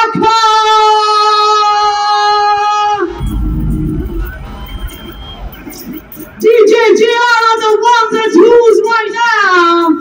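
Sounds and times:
crowd noise: 0.0 - 10.0
heavy bass through speakers: 2.8 - 7.1.

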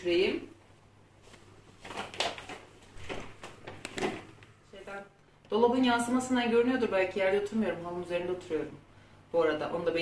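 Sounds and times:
plastic bag rustling: 1.2 - 4.5.

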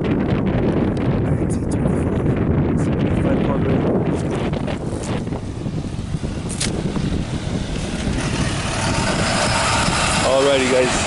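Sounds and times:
truck engine and tyres approaching: 0.0 - 11.0.

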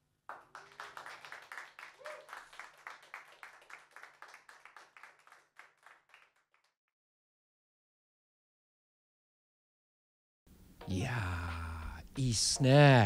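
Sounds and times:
small group clapping: 0.0 - 6.8.

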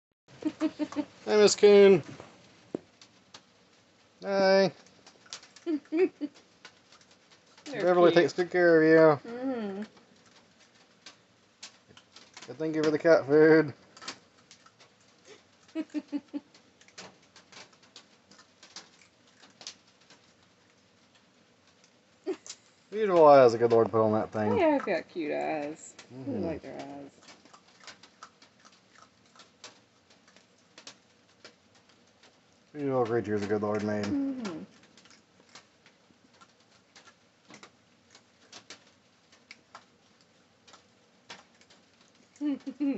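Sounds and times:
raccoon chewing dry kibble: 0.4 - 9.2, 9.8 - 42.9.

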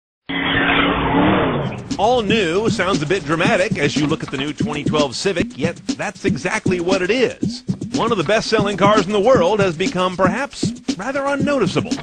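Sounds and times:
car engine: 0.3 - 4.6.

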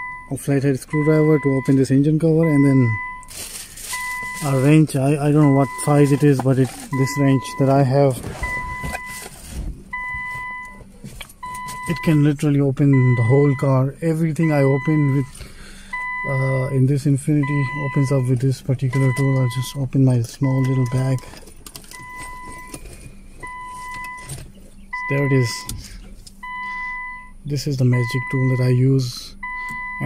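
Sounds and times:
dashboard warning chime: 0.0 - 21.3, 21.9 - 24.3, 24.9 - 30.0
tools rustling and clinking in bag: 3.2 - 4.8, 5.8 - 7.2.

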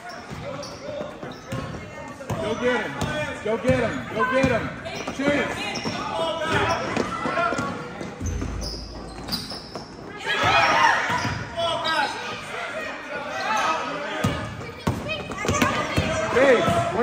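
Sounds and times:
voices of players and spectators: 0.0 - 17.0.

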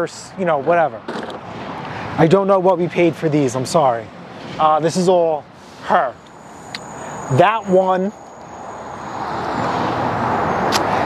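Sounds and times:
car tyre and road noise: 0.0 - 11.0.

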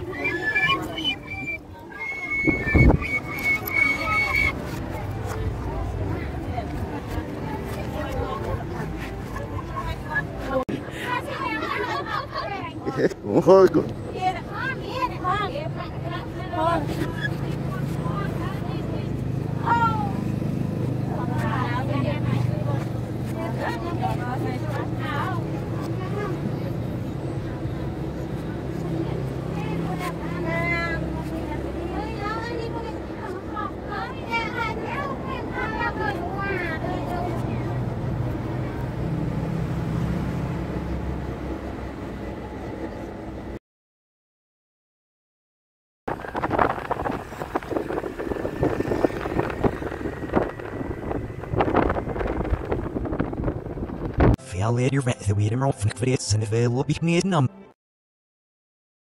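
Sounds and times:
people talking in background: 0.0 - 40.3
road noise: 0.0 - 43.6, 46.1 - 57.3
wind buffeting microphone: 2.2 - 4.7, 46.1 - 54.4
motorbike engine: 46.2 - 54.2.

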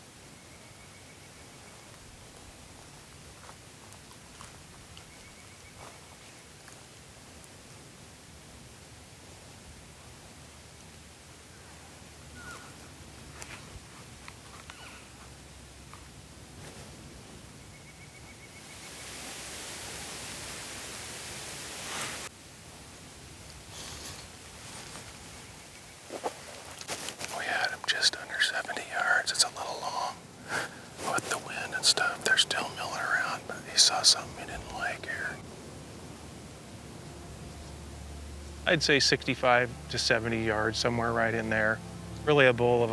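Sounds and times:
faint hiss: 0.0 - 42.9
man whispering: 27.2 - 30.3, 30.9 - 35.4, 38.6 - 42.9.

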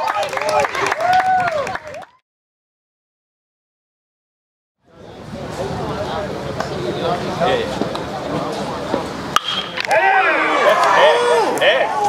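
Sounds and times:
spectators shouting and cheering: 0.0 - 2.2, 9.4 - 12.0
bat hitting baseball: 9.3 - 10.0.

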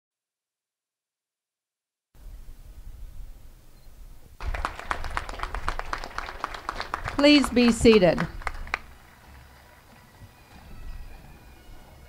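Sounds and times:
audience clapping: 4.4 - 10.5.

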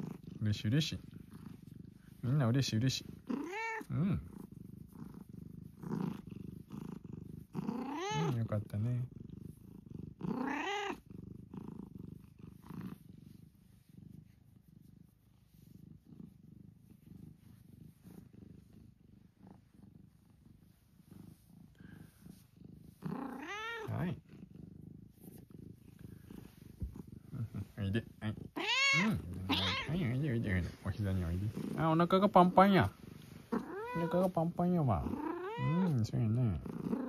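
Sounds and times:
cat purring: 0.0 - 37.0.

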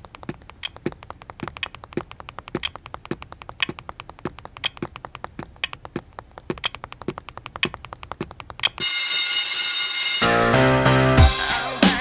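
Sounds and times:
rapid even ticking: 0.0 - 8.9
electric bell ringing: 8.8 - 10.6.

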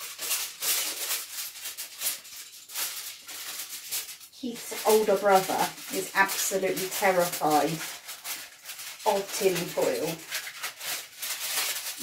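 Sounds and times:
kitchen foil crinkling: 0.0 - 12.0.

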